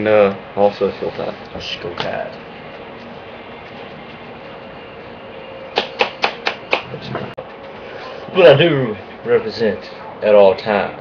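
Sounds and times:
sharp taps: 5.7 - 6.9.

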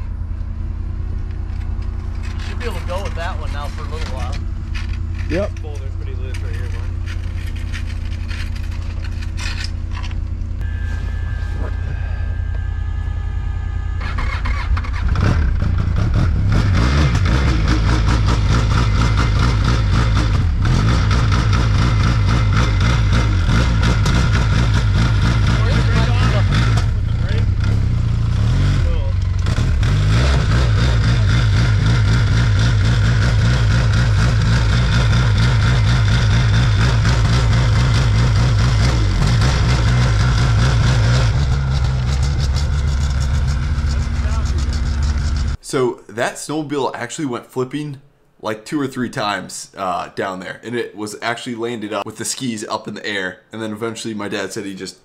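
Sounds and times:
vehicle engine droning: 0.0 - 45.7.

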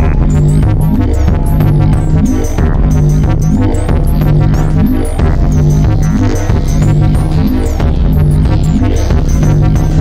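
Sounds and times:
low bass drone: 0.0 - 10.0.

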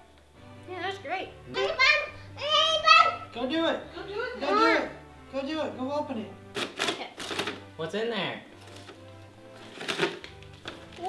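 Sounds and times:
quiet background music: 0.0 - 11.0
paper rustling and crinkling: 6.6 - 7.7, 8.6 - 11.0.

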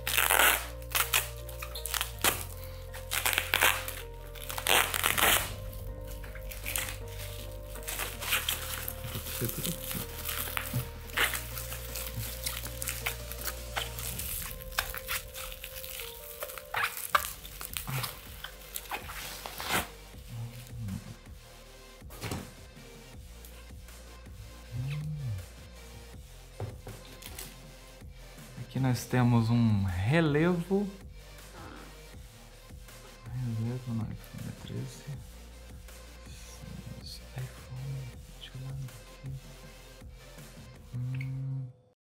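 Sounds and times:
bubble-wrap mailer crinkling: 0.0 - 19.9
background music: 0.0 - 42.0.

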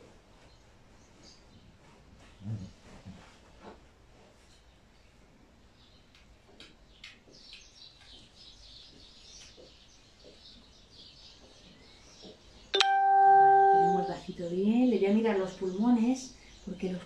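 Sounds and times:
bell-like chime tone: 12.8 - 14.1
woman speaking: 12.8 - 17.0.

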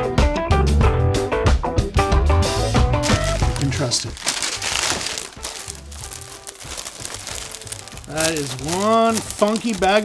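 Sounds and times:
background music: 0.0 - 10.0
plastic bag and paper crinkling: 3.0 - 10.0.

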